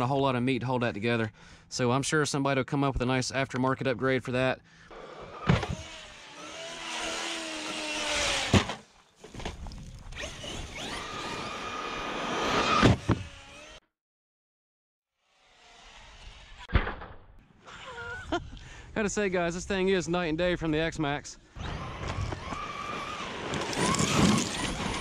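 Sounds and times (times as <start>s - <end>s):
electric motor whine: 4.9s - 8.6s, 10.1s - 13.8s, 21.6s - 25.0s
toy truck hard landing thump: 8.4s - 9.6s
tyre noise: 21.7s - 25.0s.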